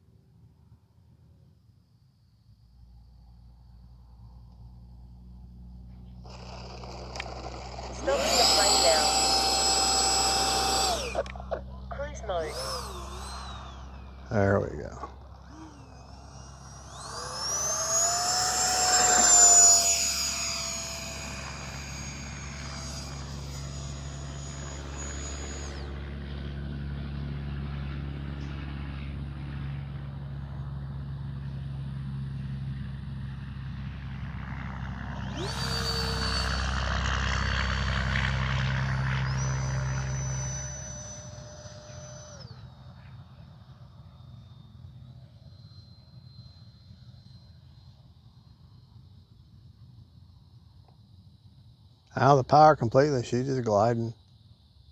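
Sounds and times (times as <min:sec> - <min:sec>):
electric ducted fan whine: 0:04.6 - 0:31.3, 0:33.6 - 0:48.6.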